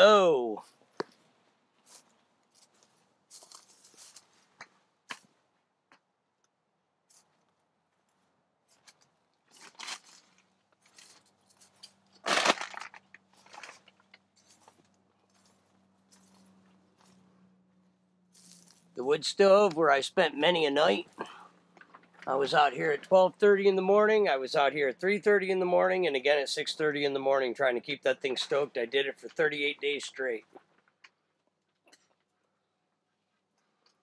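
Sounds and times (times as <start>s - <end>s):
footsteps crunching dry straw: 1.8s - 4.6s, 8.0s - 17.3s, 18.3s - 19.0s.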